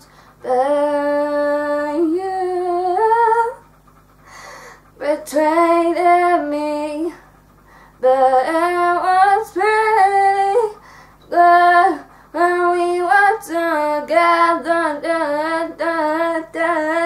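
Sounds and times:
girl singing: 8.0s - 17.0s.

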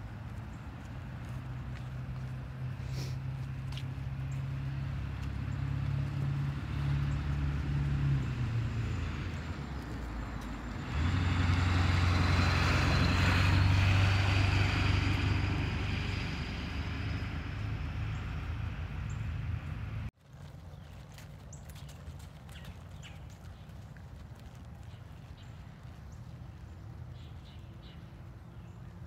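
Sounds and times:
truck driving past: 0.0s - 20.1s
passing vehicles engine hum: 0.0s - 29.0s.

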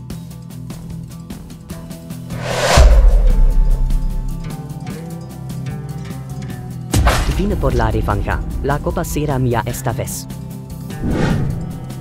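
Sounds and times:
rising whoosh: 2.3s - 4.7s
loud deep boom: 2.4s - 4.6s.

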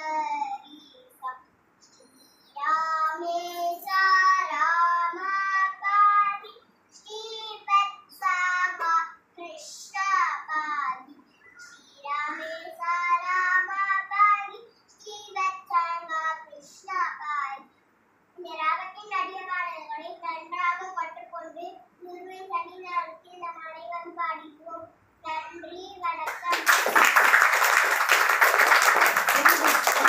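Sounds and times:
girl singing unaccompanied: 2.6s - 11.2s, 11.9s - 17.7s.

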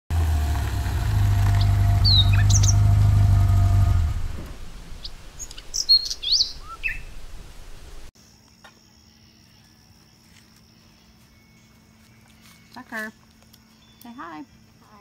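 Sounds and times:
vehicle engine hum: 0.1s - 8.1s
birds chirping: 0.6s - 8.1s.

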